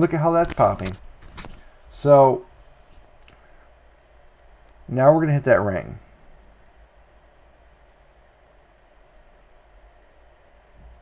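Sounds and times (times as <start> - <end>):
faint hiss and low hum: 0.0 - 11.0
faint clicks: 2.7 - 3.5, 7.6 - 11.0.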